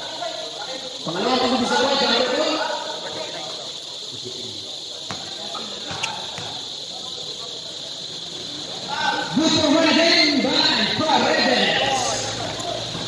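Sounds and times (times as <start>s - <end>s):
background hiss: 0.0s - 13.0s
basketball bouncing: 5.1s - 6.6s, 12.4s - 13.0s.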